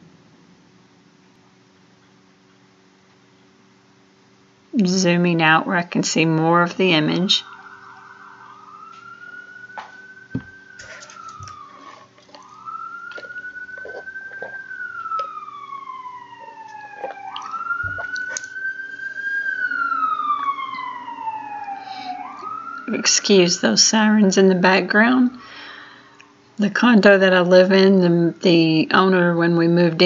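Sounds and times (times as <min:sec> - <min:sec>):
higher siren tone falling: 0:06.2 - 0:25.4
emergency vehicle sirens wailing: 0:06.3 - 0:25.8.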